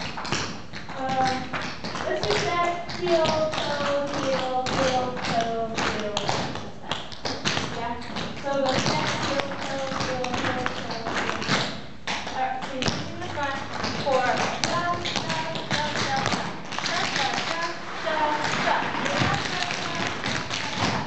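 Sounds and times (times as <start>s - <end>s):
tap shoes on wooden floor: 0.0s - 21.0s
person talking: 1.0s - 6.3s, 7.8s - 11.4s, 12.4s - 20.8s.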